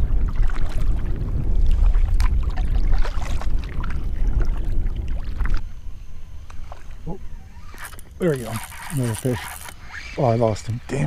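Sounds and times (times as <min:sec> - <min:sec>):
water splashing against hull: 0:00.0 - 0:09.8
wind buffeting microphone: 0:00.0 - 0:11.0.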